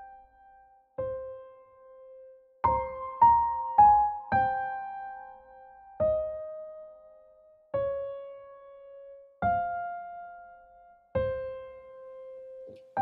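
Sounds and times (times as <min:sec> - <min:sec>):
slow piano notes: 0:00.0 - 0:13.0.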